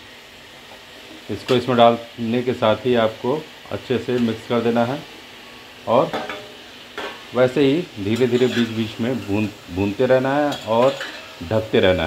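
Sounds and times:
oil sizzling: 0:00.0 - 0:12.0.

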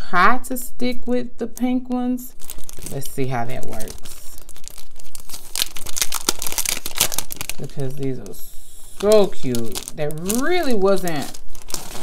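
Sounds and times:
plastic sheets crinkling: 0:02.3 - 0:12.0.

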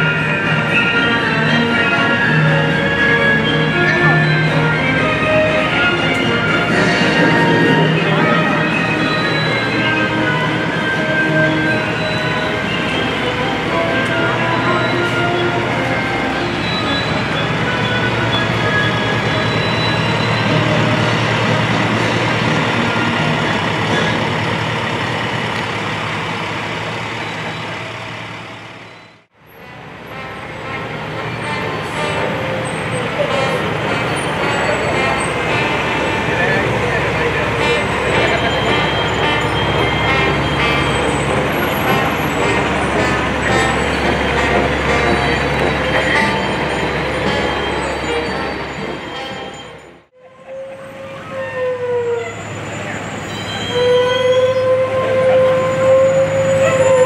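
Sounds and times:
emergency vehicle engines passing: 0:00.0 - 0:48.9, 0:49.9 - 0:57.0.

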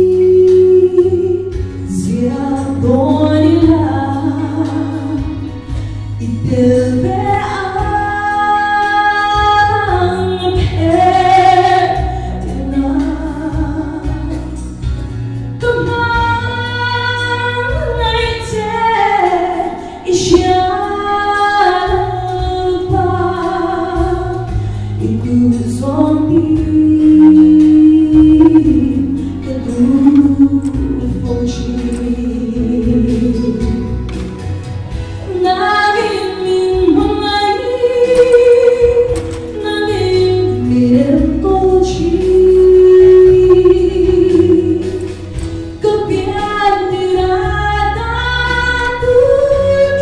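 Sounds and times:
woman singing gospel song: 0:00.0 - 0:05.5, 0:06.2 - 0:14.6, 0:15.6 - 0:34.0, 0:35.3 - 0:50.0.

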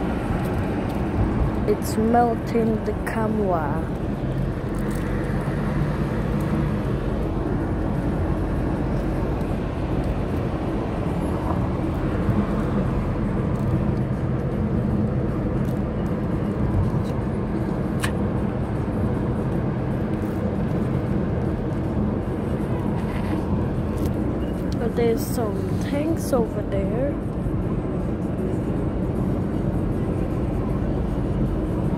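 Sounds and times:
car engine hum: 0:00.0 - 0:31.9.

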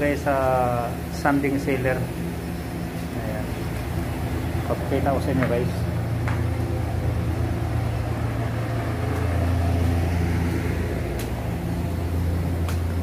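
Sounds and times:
workshop machine hum: 0:00.0 - 0:13.0.

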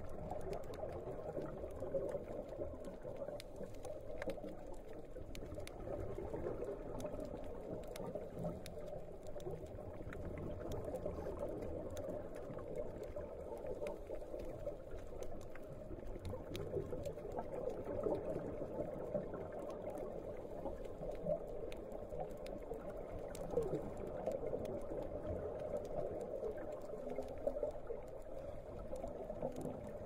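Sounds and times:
faint clicks: 0:00.0 - 0:30.0.

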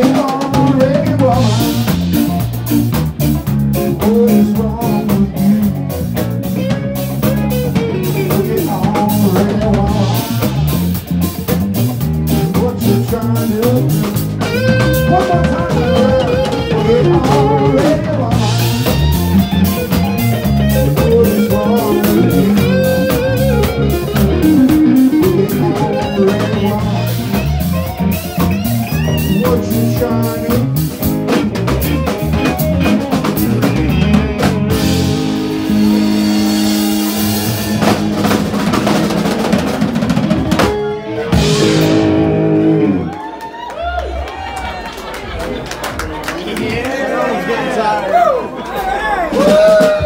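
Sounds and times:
live rock band playing: 0:00.0 - 0:46.4, 0:48.6 - 0:50.0.

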